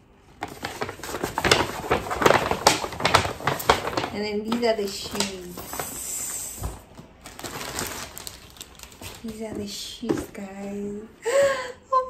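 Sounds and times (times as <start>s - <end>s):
wrapping paper rustling: 0.3s - 10.4s.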